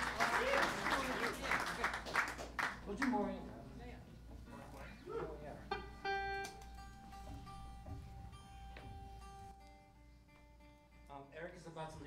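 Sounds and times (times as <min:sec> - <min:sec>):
electric guitar single notes: 0:05.6 - 0:11.1.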